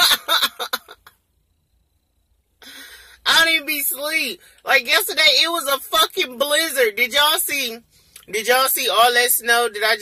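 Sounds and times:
woman laughing: 0.0s - 1.1s.

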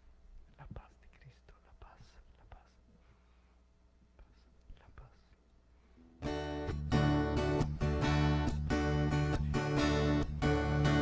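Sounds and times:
people whispering: 0.5s - 2.8s, 4.2s - 5.4s.

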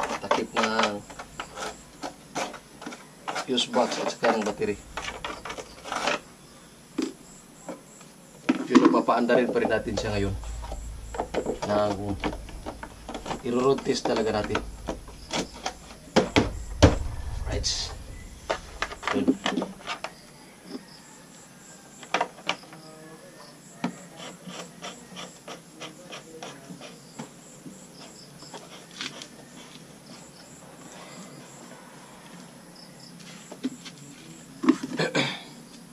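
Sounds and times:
people talking: 0.0s - 1.1s, 3.5s - 4.8s, 8.7s - 10.6s, 11.4s - 15.4s, 17.4s - 18.3s, 19.0s - 19.7s
low rumble: 0.9s - 2.7s, 4.4s - 7.4s, 9.5s - 19.9s.

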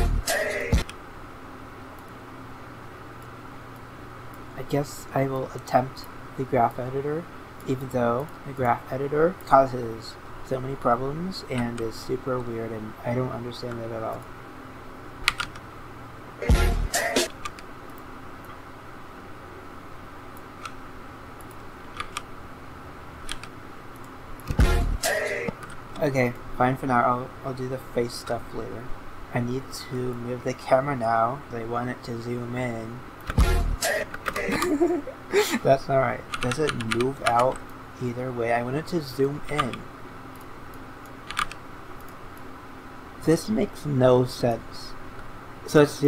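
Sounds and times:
low room hum and hiss: 0.0s - 46.0s
keyboard and mouse clicks: 15.2s - 15.6s, 17.3s - 18.6s, 20.4s - 20.8s, 21.4s - 22.3s, 23.2s - 24.6s, 36.3s - 37.8s, 39.5s - 42.2s
keyboard keys clicking: 15.3s - 15.6s, 21.4s - 22.3s, 23.3s - 24.6s, 41.3s - 41.6s.

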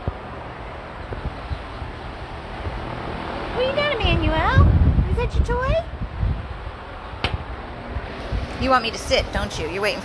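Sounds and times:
electric fan running: 0.0s - 10.0s.

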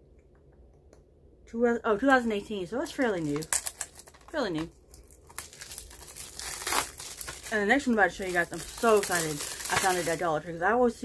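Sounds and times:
plastic packaging crinkling: 2.8s - 10.4s.

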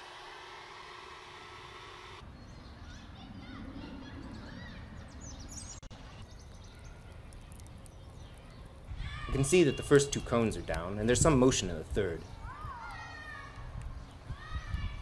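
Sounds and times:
electric leaf blower running: 0.0s - 2.2s
birds chirping: 1.6s - 15.0s.

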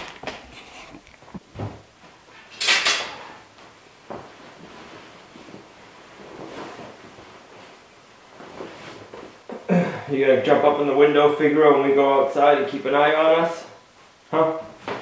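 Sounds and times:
coat fabric rustling: 3.5s - 9.7s.

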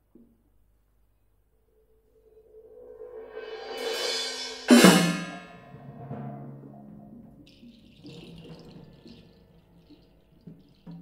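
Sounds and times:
cymbal and deep drum stroke: 2.4s - 6.5s.

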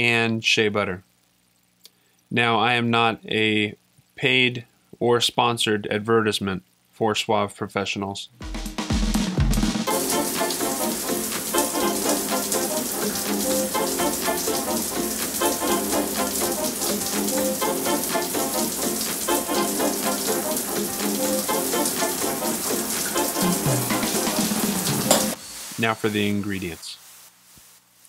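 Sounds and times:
background music: 8.4s - 25.4s
shower spray running: 9.9s - 27.2s.

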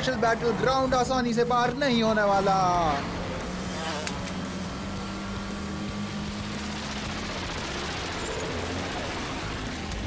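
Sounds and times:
toy racing car motors buzzing: 0.0s - 10.0s.

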